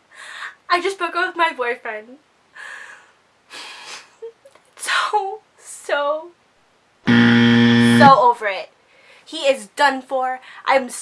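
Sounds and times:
low buzzer: 7.1s - 8.2s
woman speaking: 8.0s - 8.7s, 9.3s - 11.0s.

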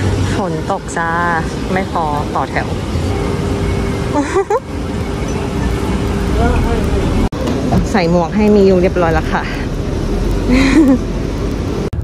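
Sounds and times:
cars passing on wet road: 5.6s - 12.0s.

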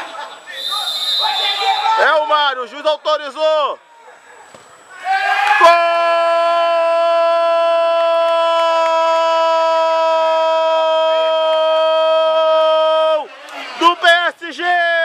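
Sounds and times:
man shouting long goal call: 0.6s - 2.6s, 5.0s - 13.2s.

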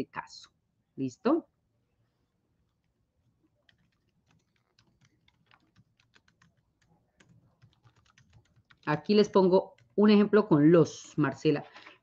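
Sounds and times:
typing on computer keyboard: 3.6s - 10.1s.

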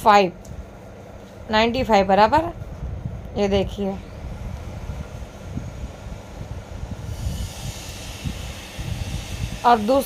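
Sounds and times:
low background rumble: 0.0s - 10.0s
hiss: 6.9s - 10.0s.

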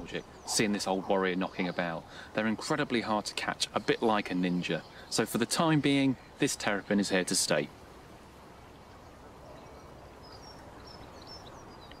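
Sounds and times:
steady background hush: 0.0s - 12.0s
faint high bird chirps: 8.9s - 12.0s.

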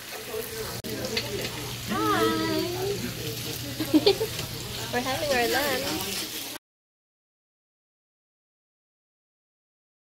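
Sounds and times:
meat sizzling on a grill: 0.0s - 6.6s
person's voice: 0.3s - 6.2s.

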